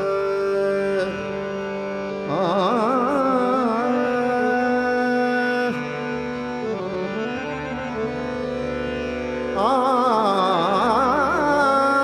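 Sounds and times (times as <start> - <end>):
man singing: 0.0 - 1.2, 2.3 - 6.2, 9.6 - 12.0
harmonium melody: 0.0 - 12.0.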